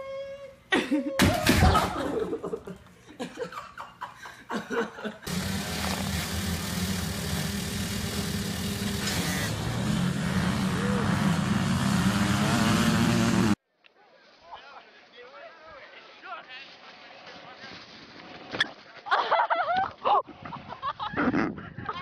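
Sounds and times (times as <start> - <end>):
people laughing: 0.7 - 5.3, 19.0 - 22.0
dirt bike engines revving: 5.2 - 13.6.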